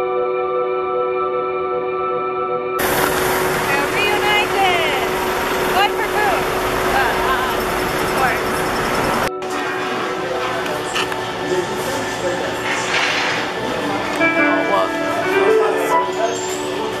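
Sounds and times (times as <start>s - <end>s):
background music: 0.0s - 8.6s, 9.2s - 17.0s
traffic noise: 2.8s - 9.3s
women exclaiming and calling out: 3.7s - 5.1s.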